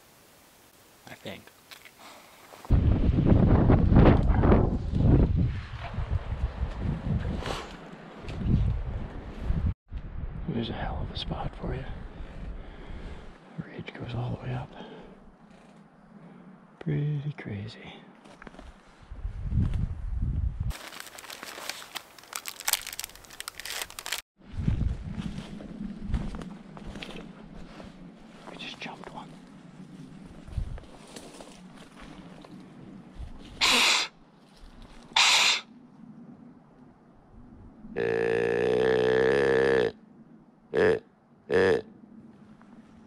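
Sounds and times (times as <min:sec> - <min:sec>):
crunching through snowy brush: 0:20.7 - 0:33.6.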